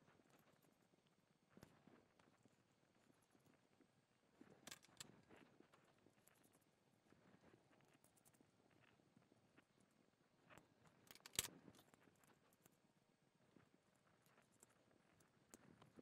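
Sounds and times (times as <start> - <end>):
hex key clicking on screw: 11.1 - 11.5.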